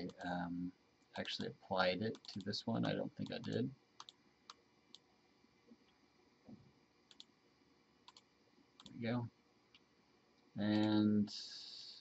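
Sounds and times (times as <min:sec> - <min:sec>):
faint computer mouse clicks: 0:02.1 - 0:02.5, 0:03.2 - 0:05.1, 0:07.1 - 0:07.3, 0:08.0 - 0:09.0.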